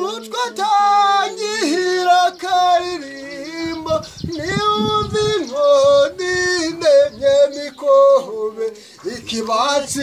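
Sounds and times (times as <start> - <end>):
man singing in a high voice: 0.0 - 10.0.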